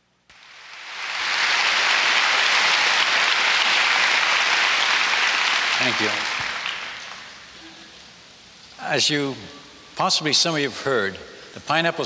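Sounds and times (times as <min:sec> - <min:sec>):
audience applauding: 0:00.3 - 0:07.6.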